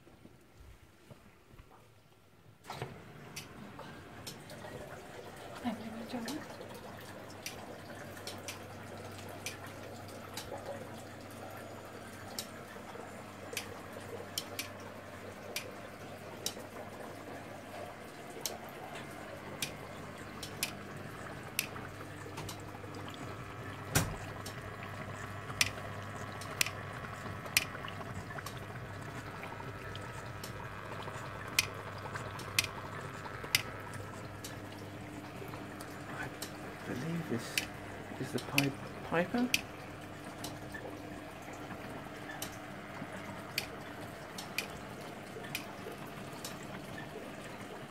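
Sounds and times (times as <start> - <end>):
steady low hum: 3.2 - 47.9
water dripping: 3.4 - 47.9.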